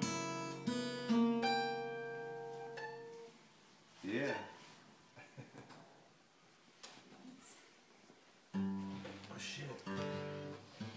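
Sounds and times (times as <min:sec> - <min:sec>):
acoustic guitar strumming: 0:00.0 - 0:03.4, 0:08.5 - 0:10.9.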